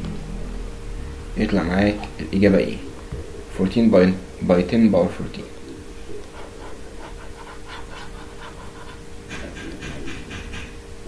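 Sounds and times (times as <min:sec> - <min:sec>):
stylus scratching on tablet screen: 0:06.1 - 0:10.7.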